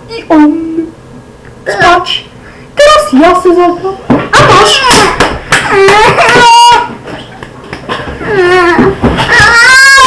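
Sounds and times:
child wailing: 5.7 - 6.9, 8.3 - 10.0
child shouting: 9.3 - 10.0.

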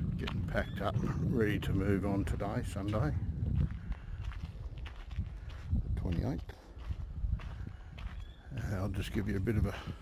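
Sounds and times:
footsteps on gravel: 1.6 - 10.0.

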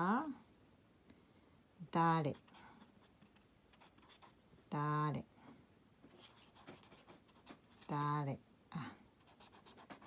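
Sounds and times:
pen scratching on paper: 2.3 - 4.4, 6.2 - 8.0, 9.2 - 10.0.

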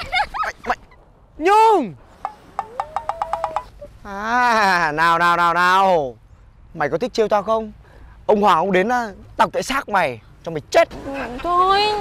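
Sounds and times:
thin rising tone: 0.9 - 4.1.

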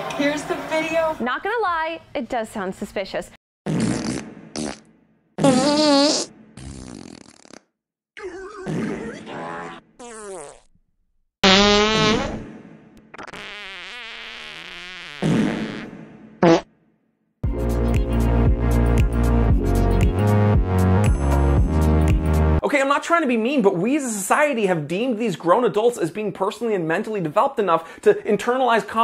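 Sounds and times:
fart sound effects: 3.7 - 10.8, 11.4 - 16.7
electronic music: 17.4 - 22.6.

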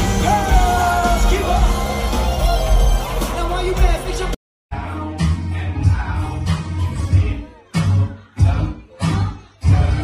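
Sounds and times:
live pop band: 0.0 - 10.0
man singing: 0.0 - 10.0.

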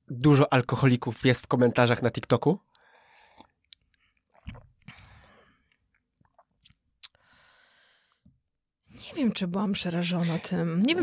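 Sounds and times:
sipping and swallowing: 3.2 - 7.2
soft breaths: 7.2 - 8.4.

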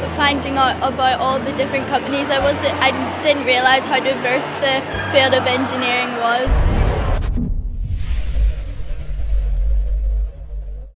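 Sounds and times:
deep bass rumble: 6.5 - 11.0.

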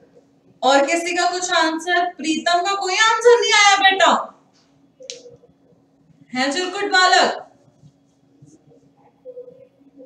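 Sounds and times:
faint steady hum: 0.0 - 10.0
woman speaking: 0.6 - 4.4, 6.3 - 7.5.

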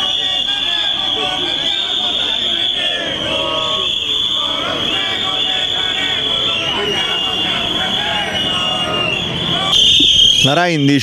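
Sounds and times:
crowd chatter: 0.0 - 11.0
high-pitched protest whistles: 0.0 - 11.0.

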